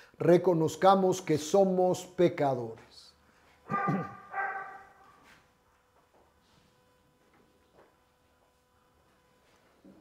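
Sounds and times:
dog barking: 3.7 - 5.2.

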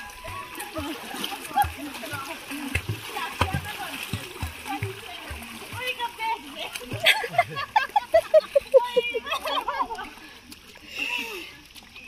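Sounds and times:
voices: 0.0 - 11.6
water splashing: 0.0 - 12.0.

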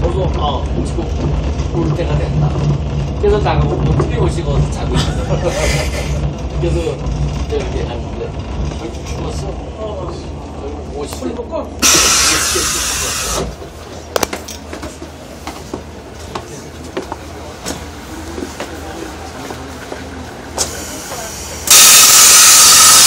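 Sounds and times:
railcar running noise: 0.0 - 23.0
passenger voices murmuring: 1.0 - 23.0
compressed air hiss: 11.8 - 13.5, 20.6 - 23.0.

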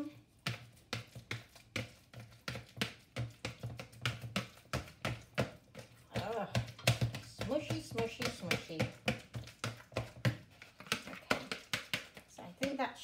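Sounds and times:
bananas being mashed in a bowl: 0.0 - 13.0.

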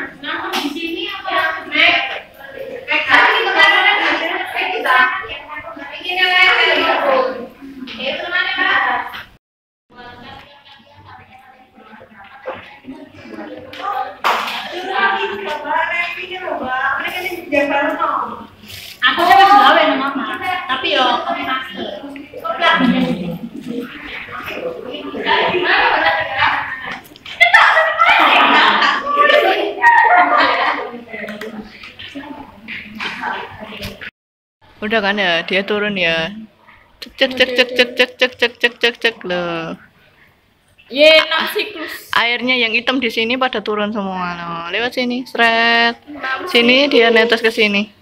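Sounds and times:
indistinct voices talking: 11.0 - 34.1, 35.0 - 40.0.

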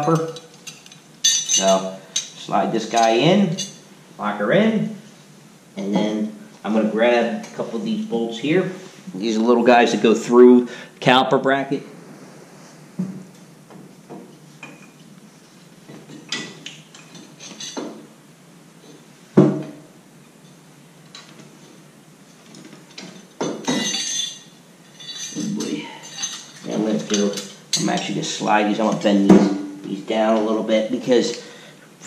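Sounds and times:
metal bolts clinking: 0.0 - 3.8, 16.3 - 17.9, 23.0 - 28.2.

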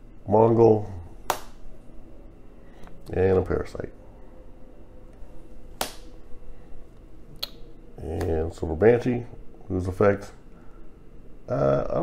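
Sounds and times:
card snapping onto stack: 1.3 - 1.6, 5.8 - 6.1.

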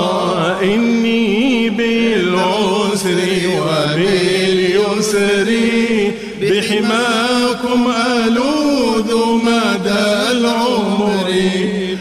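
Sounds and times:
devotional chanting: 0.0 - 12.0.

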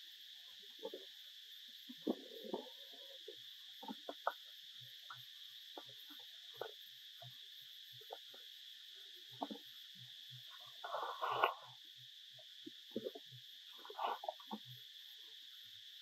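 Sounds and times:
insects droning: 0.0 - 16.0.

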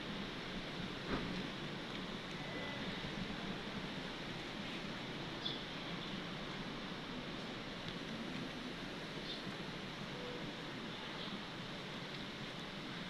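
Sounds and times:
outdoor ambient hiss: 0.0 - 13.0.

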